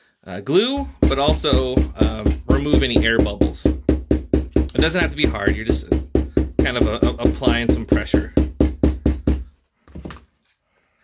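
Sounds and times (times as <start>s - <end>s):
mallet tapping leather: 0.8s - 9.5s.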